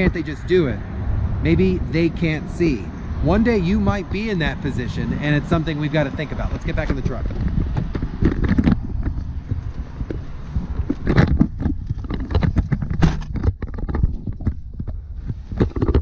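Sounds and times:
low rumble of mic handling: 0:00.0 - 0:16.0.

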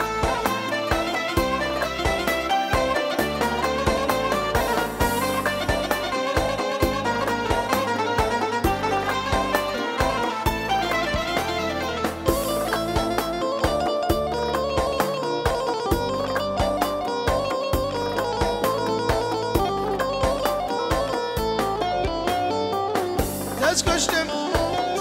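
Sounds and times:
music with steady beat: 0:00.0 - 0:25.0.

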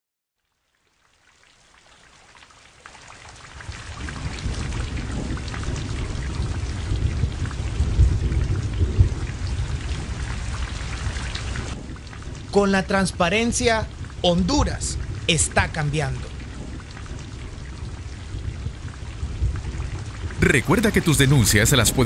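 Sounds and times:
steady rain falling: 0:00.4 - 0:22.0
low rumbles of thunder: 0:03.6 - 0:20.4.

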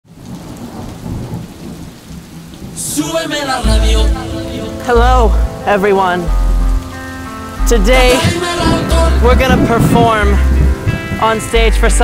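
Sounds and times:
steady rain: 0:00.0 - 0:12.0
low rumble of thunder: 0:00.1 - 0:02.9, 0:08.1 - 0:12.0.

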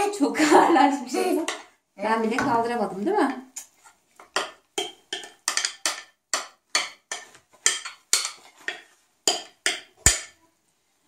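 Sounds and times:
spoon knocking in glass bowl: 0:04.3 - 0:10.4.

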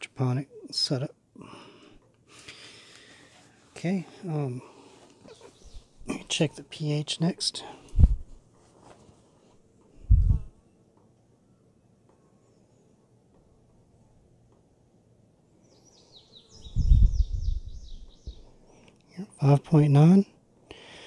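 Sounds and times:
small bird chirping: 0:05.3 - 0:06.1, 0:15.6 - 0:18.6
low thuds: 0:07.9 - 0:08.4, 0:10.0 - 0:10.5.

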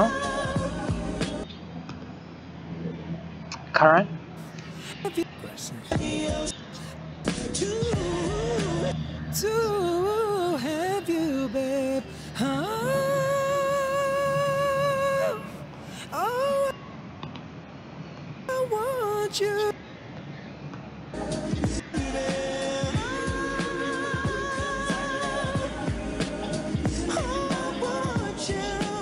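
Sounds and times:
man singing slow r and b: 0:00.0 - 0:01.4, 0:04.8 - 0:16.8, 0:18.5 - 0:19.8, 0:21.2 - 0:29.0.

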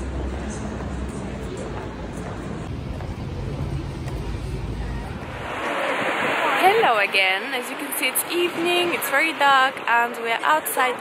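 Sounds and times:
low rumble of traffic: 0:00.0 - 0:11.0
wind on microphone: 0:02.6 - 0:09.9.

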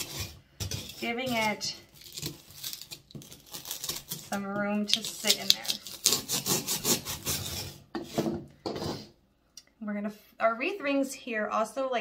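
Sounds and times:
knife sawing through foam: 0:00.0 - 0:04.4, 0:05.0 - 0:08.3.

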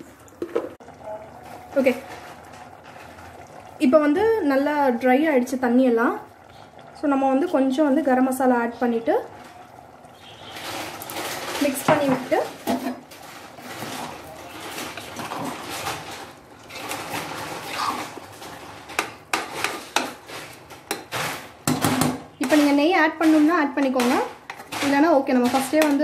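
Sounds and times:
spoon stirring rice in pot: 0:10.3 - 0:26.0.

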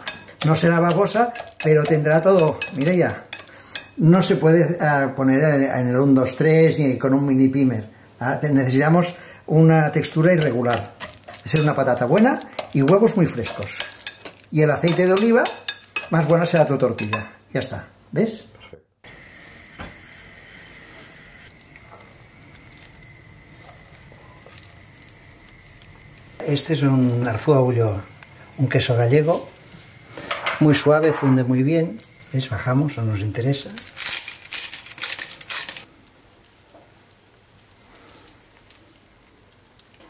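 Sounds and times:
gas hob hissing: 0:19.0 - 0:33.7
spice grinder grinding: 0:20.0 - 0:30.7, 0:31.5 - 0:39.0
faint small ticks: 0:36.0 - 0:40.0.

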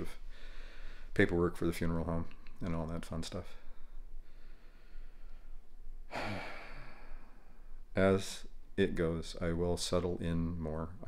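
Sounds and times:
man sighing: 0:06.1 - 0:07.7.

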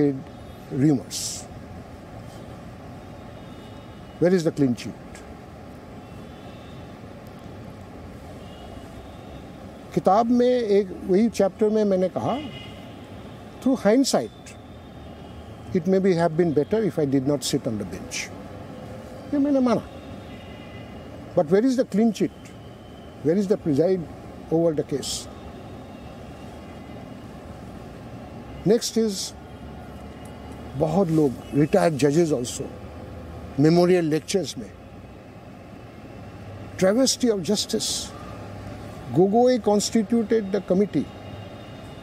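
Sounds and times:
outdoor ambience rumble and hiss: 0:00.0 - 0:42.0.

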